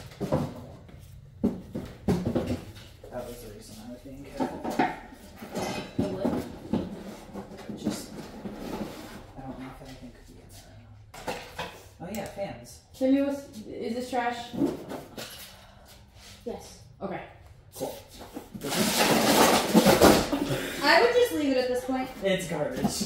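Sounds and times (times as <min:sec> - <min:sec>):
boxes knocking and clattering: 0:00.0 - 0:03.0, 0:04.2 - 0:09.3, 0:18.2 - 0:20.7, 0:22.6 - 0:23.0.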